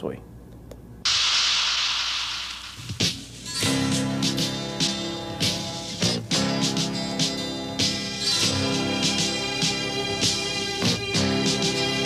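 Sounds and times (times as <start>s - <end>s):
burst of hissing noise: 1.1s - 3.6s.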